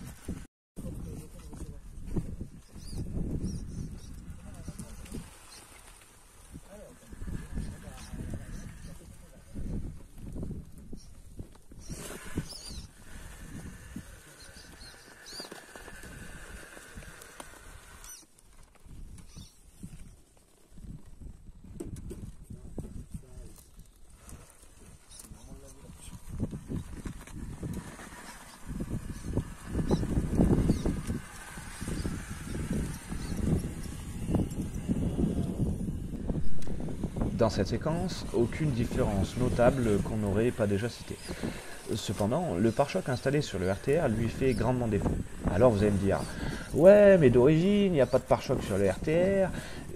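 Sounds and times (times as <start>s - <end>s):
electric motor whining: 6.5s - 10.6s, 11.8s - 18.3s, 26.2s - 49.9s.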